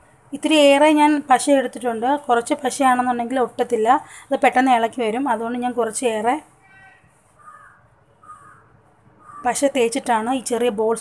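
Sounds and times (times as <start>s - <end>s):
harsh bird calls: 6.6s - 9.6s.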